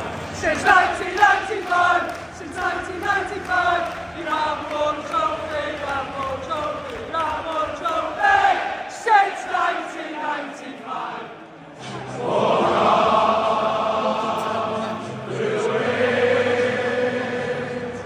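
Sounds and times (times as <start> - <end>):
stadium crowd singing a chant: 0.0 - 18.0.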